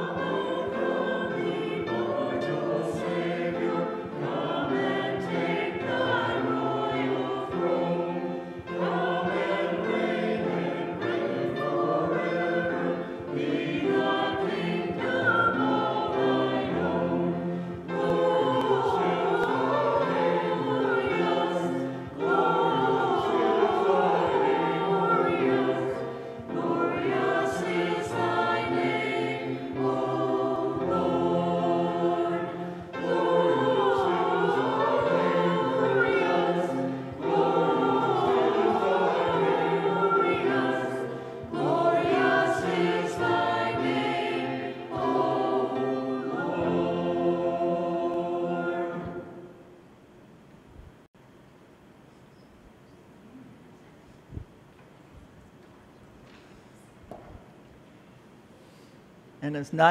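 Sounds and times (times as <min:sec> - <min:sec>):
church choir singing: 0:00.0 - 0:50.2.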